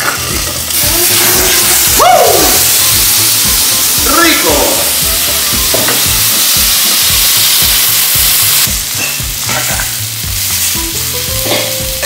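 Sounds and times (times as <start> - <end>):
chicken sizzling on a griddle: 0.0 - 12.0.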